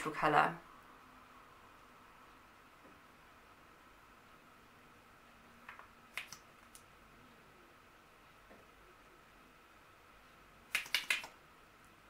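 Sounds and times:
faint room hiss: 0.0 - 12.0
soft clicks: 5.6 - 6.9, 10.7 - 11.4.

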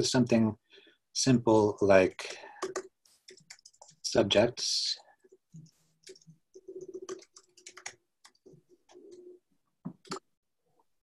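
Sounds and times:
keyboard typing: 2.6 - 4.0, 5.5 - 10.3.

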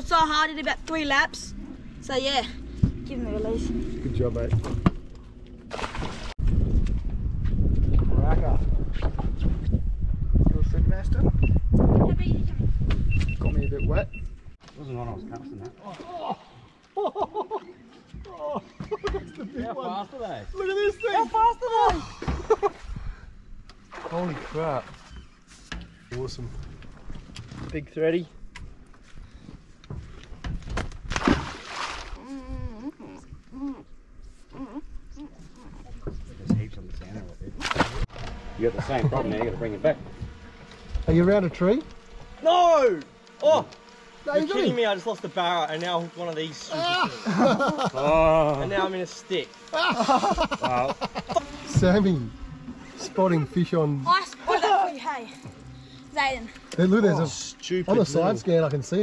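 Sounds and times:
wind rumbling on microphone: 1.3 - 14.6
voices talking and calling out: 13.4 - 22.6, 38.5 - 59.0.

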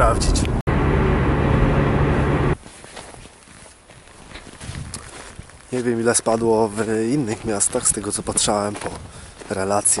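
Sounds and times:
car interior driving drone: 0.0 - 2.6
footsteps in snow: 2.6 - 10.0.

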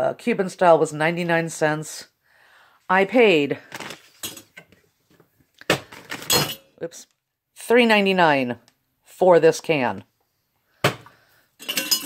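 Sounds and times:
rustling of groceries: 3.5 - 6.5
metal can clinking: 11.6 - 12.0.

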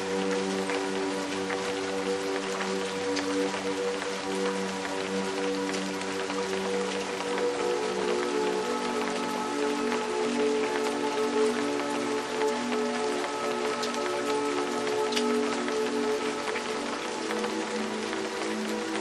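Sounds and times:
soft ambient music: 0.0 - 19.0
steady rain: 0.0 - 19.0.

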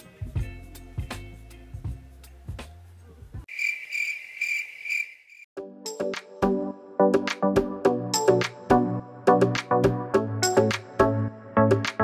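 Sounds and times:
background music: 0.0 - 3.2, 5.6 - 12.0
cricket chirping: 3.5 - 5.5
synth music: 5.6 - 12.0.

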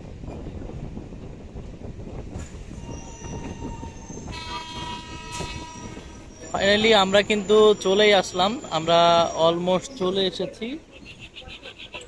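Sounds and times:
train rumbling over rails: 0.0 - 12.0
train horn: 2.8 - 6.3.

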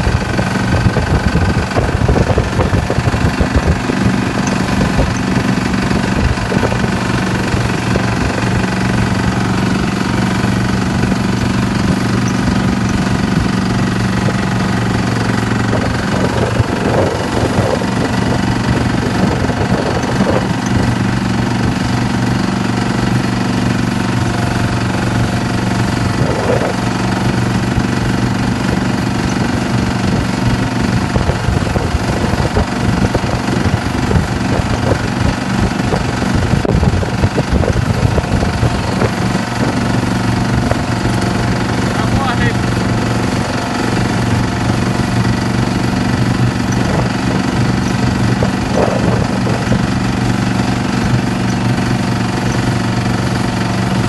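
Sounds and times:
boat engine running: 0.0 - 54.0.

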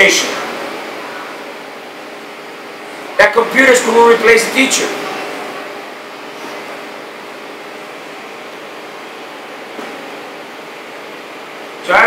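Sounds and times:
air conditioning hiss: 0.0 - 12.0.

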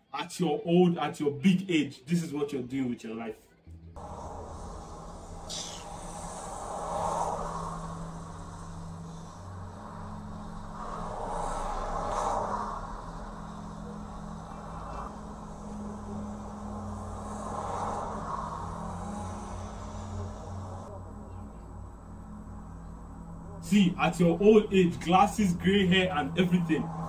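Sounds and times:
passing road traffic: 3.7 - 27.0.

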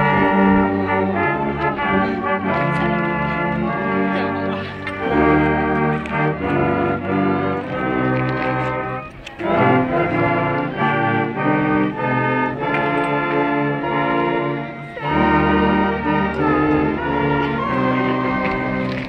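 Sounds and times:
brass band playing: 0.0 - 19.0.

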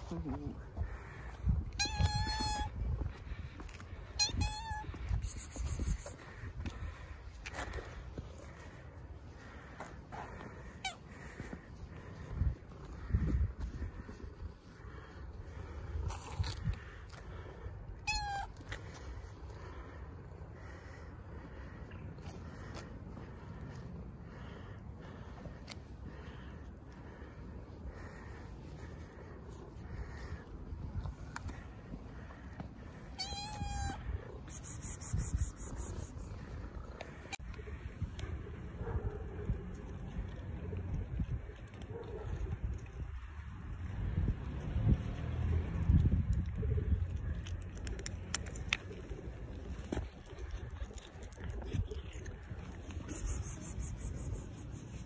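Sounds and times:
cat meowing: 1.7 - 2.8, 4.1 - 6.0, 18.0 - 18.6, 33.1 - 34.1.

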